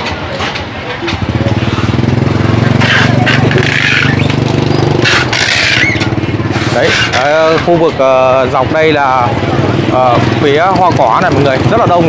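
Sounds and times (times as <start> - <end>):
motorbike engine running: 1.0 - 12.0.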